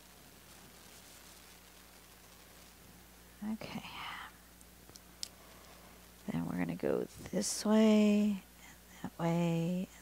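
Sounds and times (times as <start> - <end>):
woman murmuring and whispering: 3.4 - 4.4, 6.3 - 10.0.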